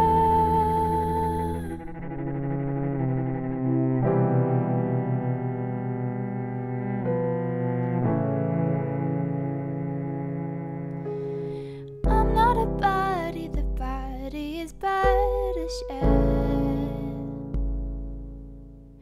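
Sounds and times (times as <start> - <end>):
woman singing: 0.0 - 2.1, 12.0 - 17.4
bowed cello: 0.0 - 19.0.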